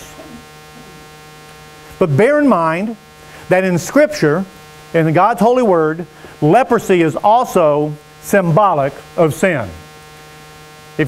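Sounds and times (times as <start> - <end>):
electrical mains hum: 0.0 - 11.0
thin buzz of steady tones: 0.0 - 11.0.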